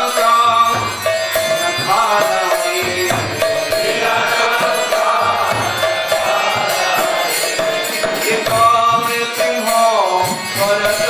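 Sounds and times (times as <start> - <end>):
rhythmic percussion: 0.0 - 11.0
voices chanting a mantra: 0.0 - 11.0.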